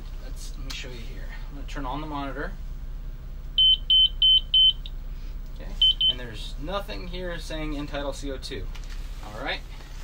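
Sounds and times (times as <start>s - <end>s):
short high beeps: 3.6s - 4.8s, 5.8s - 6.2s.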